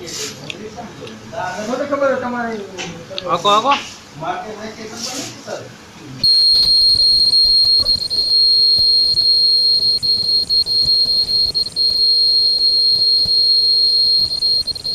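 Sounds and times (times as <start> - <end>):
high-pitched machine whine: 6.2 - 14.9
low hum: 6.2 - 14.9.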